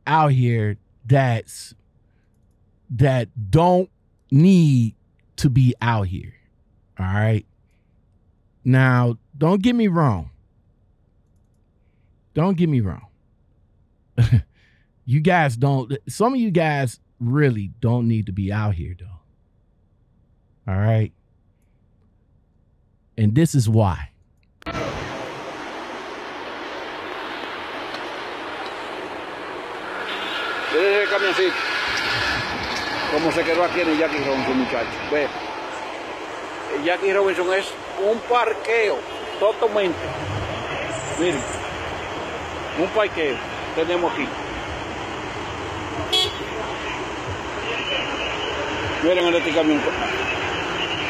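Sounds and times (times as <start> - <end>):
city road traffic: 23.8 - 51.0.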